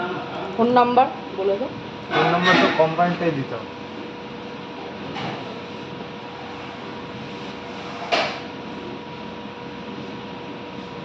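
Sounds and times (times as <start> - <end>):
faint constant hum: 0.0 - 11.0.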